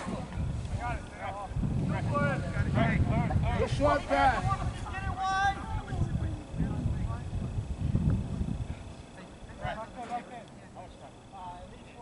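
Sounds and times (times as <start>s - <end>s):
wind rumble on microphone: 0.0s - 9.9s
distant shouts: 3.6s - 6.5s.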